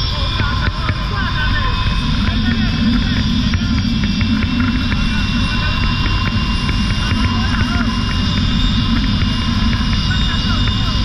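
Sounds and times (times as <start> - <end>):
wind buffeting a microphone: 0.0 - 11.0.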